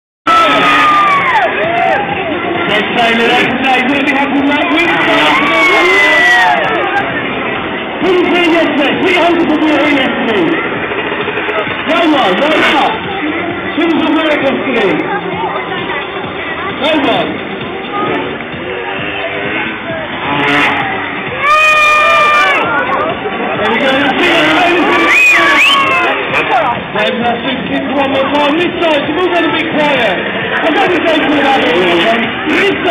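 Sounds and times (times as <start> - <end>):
crowd cheering: 0.3 - 3.5, 4.5 - 7.8, 17.9 - 27.0
crowd noise: 0.3 - 32.9
music over loudspeakers: 0.3 - 32.9
motorbike engine revving: 6.5 - 32.9.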